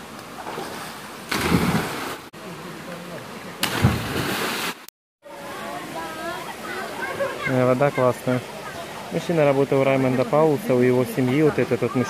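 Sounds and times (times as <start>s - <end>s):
body splashing into water: 0.4s - 2.3s, 3.6s - 4.8s.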